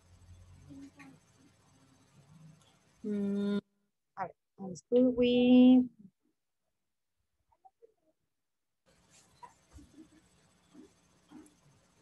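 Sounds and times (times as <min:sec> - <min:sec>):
room noise hiss: 0:00.0 - 0:03.6, 0:08.9 - 0:12.0.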